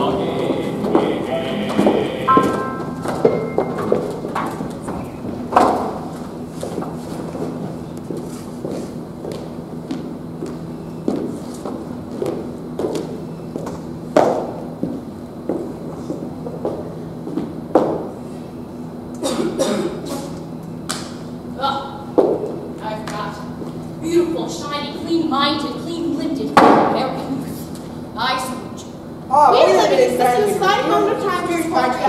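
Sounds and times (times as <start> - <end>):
voices: 0.0 - 4.1, 22.8 - 32.0
low steady hum: 0.0 - 32.0
footsteps and stomps on stage: 1.7 - 18.1.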